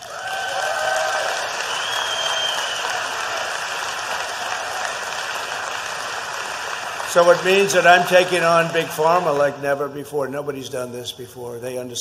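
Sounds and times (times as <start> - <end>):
audience applauding and cheering: 0.0 - 9.8.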